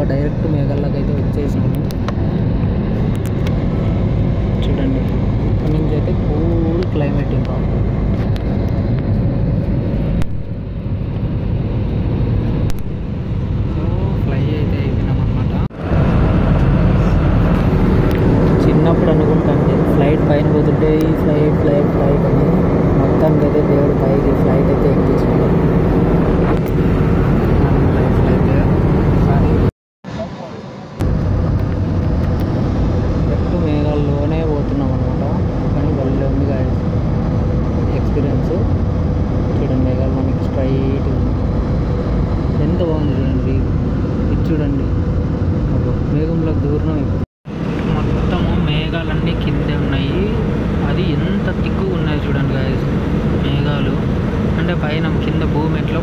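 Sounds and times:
jet airliner cabin roar: 0:00.0 - 0:56.0.

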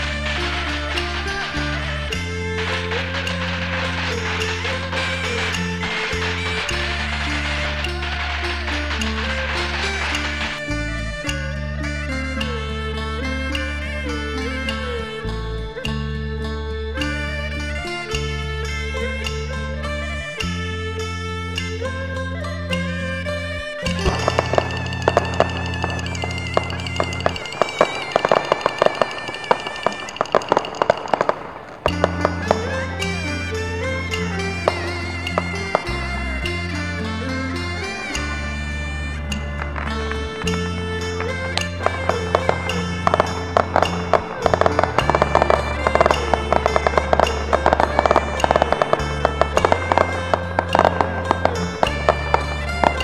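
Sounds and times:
fireworks popping: 0:00.0 - 0:10.9, 0:23.9 - 0:53.0
low musical drone: 0:00.0 - 0:53.0
music with wavering melody: 0:00.0 - 0:53.0.

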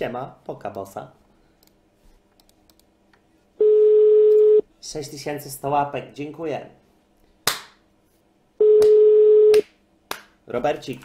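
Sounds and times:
telephone ringback beep: 0:03.6 - 0:04.6, 0:08.6 - 0:09.6.

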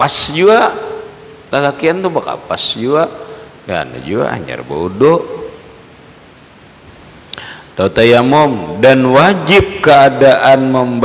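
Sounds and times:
man speaking through microphone: 0:00.0 - 0:05.6, 0:07.8 - 0:11.0
steady faint hiss: 0:00.0 - 0:11.0.

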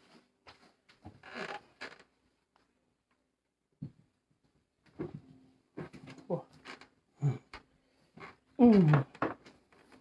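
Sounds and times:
chair creaking: 0:01.0 - 0:02.2, 0:05.0 - 0:07.6, 0:08.2 - 0:10.0.

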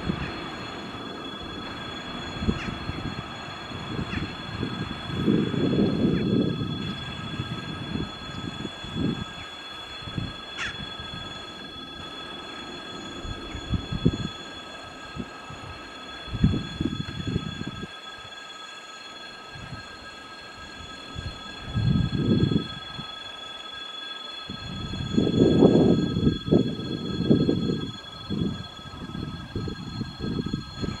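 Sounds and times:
locomotive wheels rumbling on rails: 0:00.0 - 0:31.0.

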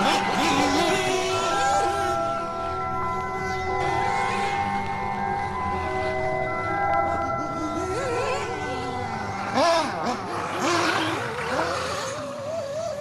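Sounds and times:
music with chime-like tones: 0:00.0 - 0:12.0
small nitro engine revving: 0:08.1 - 0:13.0.

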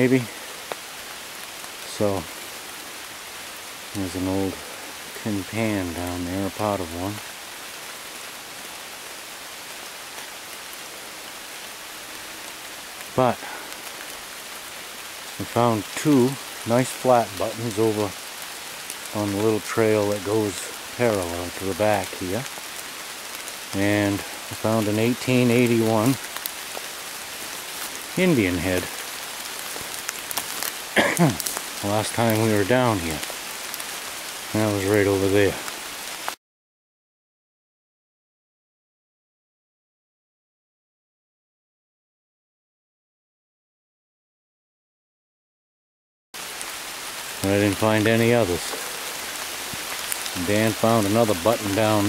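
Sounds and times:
steady rain in woods: 0:00.0 - 0:36.4, 0:46.4 - 0:52.0.

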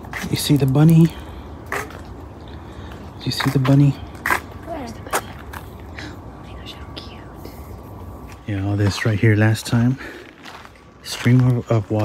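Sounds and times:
low background noise: 0:00.0 - 0:12.0
soft whispering voices: 0:02.6 - 0:10.4.

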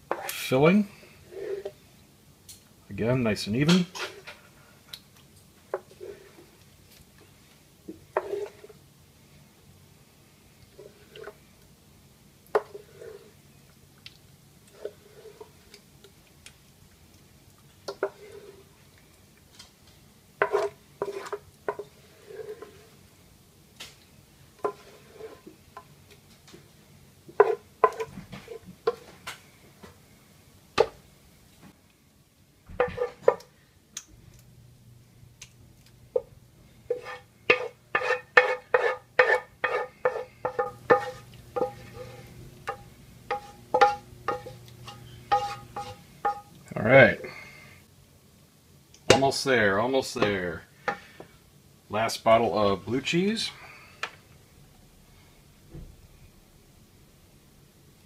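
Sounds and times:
wooden spoon scraping a pan: 0:00.0 - 0:01.9, 0:03.6 - 0:04.8, 0:05.7 - 0:07.3, 0:07.9 - 0:08.8, 0:10.7 - 0:11.4, 0:12.5 - 0:13.5, 0:14.7 - 0:15.8, 0:17.8 - 0:18.8, 0:20.4 - 0:23.1, 0:24.6 - 0:26.6, 0:27.3 - 0:30.0, 0:32.8 - 0:33.5, 0:36.1 - 0:46.5, 0:50.0 - 0:51.3.

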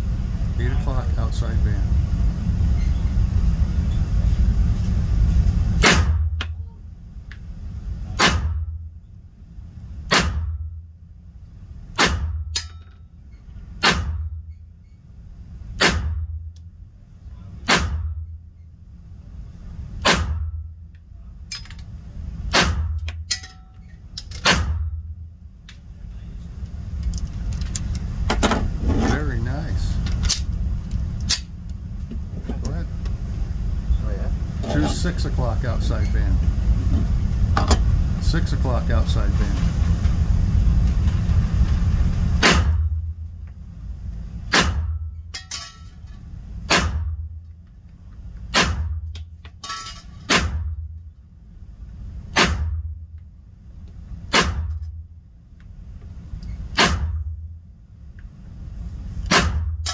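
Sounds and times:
low rumble after shots: 0:23.9 - 0:49.2.

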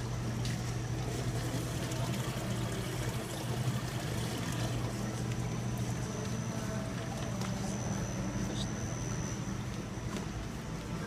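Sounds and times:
aquarium pumps humming: 0:00.0 - 0:11.0
water trickling: 0:00.4 - 0:05.9.

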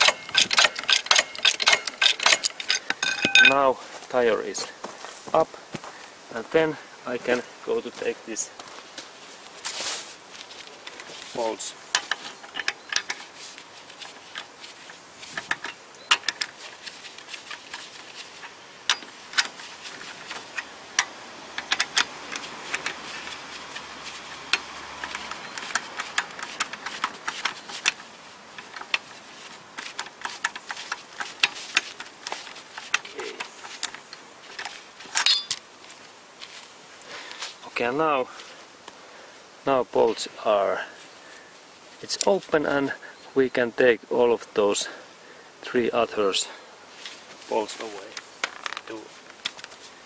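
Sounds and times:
socket ratchet clicking: 0:00.0 - 0:03.5
metal clatter: 0:00.0 - 0:03.6, 0:29.8 - 0:35.7.

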